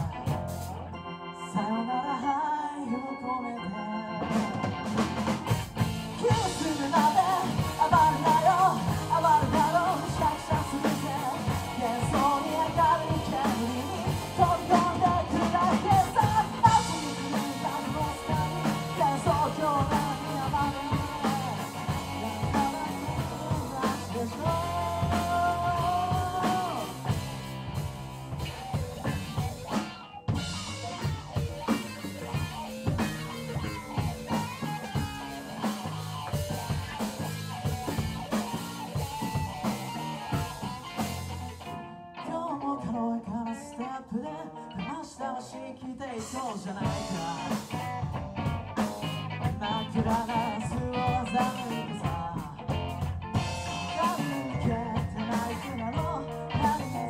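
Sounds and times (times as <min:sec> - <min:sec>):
live rock band playing: 0:00.0 - 0:57.0
lead singer singing: 0:05.8 - 0:27.9, 0:42.2 - 0:57.0.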